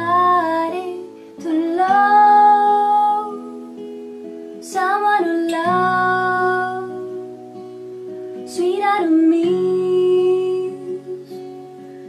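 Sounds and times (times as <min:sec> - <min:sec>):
woman singing: 0:00.0 - 0:11.8.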